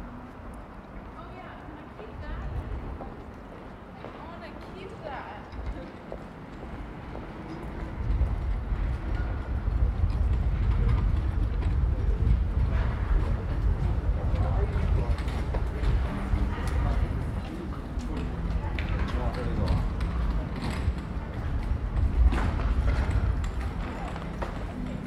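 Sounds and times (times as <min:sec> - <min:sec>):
wind buffeting microphone: 0:00.0 - 0:25.0
passers-by talking: 0:00.7 - 0:25.0.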